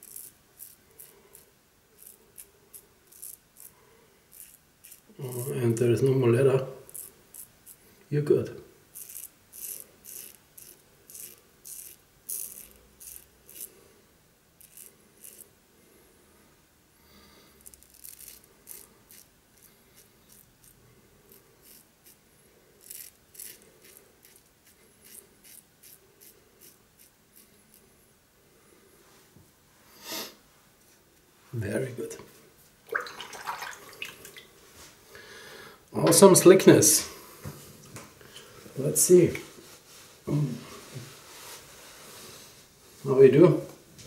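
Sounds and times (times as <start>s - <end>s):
razor scraping stubble: 0.0s - 3.7s, 4.3s - 5.9s, 6.8s - 7.8s, 8.9s - 13.8s, 14.6s - 15.5s, 17.6s - 22.2s, 22.8s - 27.9s.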